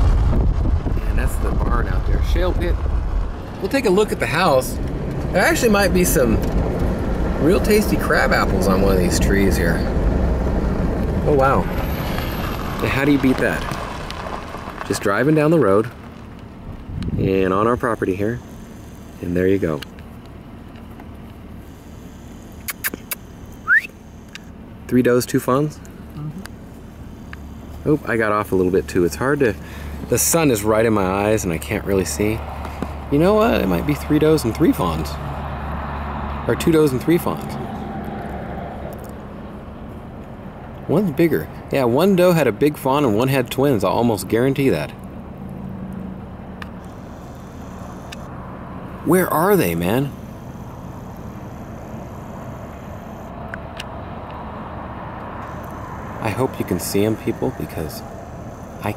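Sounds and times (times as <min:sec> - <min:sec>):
engine idling hum: 0:00.0 - 0:58.9
sharp clicks: 0:22.3 - 0:24.5.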